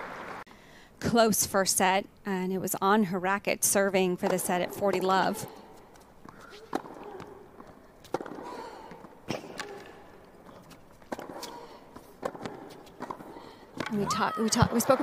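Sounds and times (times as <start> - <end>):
tennis ball struck by racquets: 6.2 - 10.0, 10.6 - 15.0.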